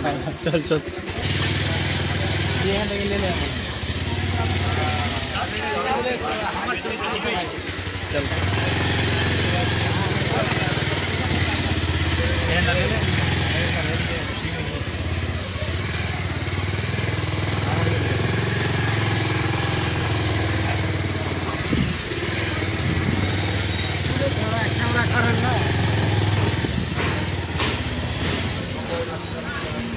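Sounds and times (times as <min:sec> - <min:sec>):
motorcycle engine riding: 0:00.0 - 0:29.9.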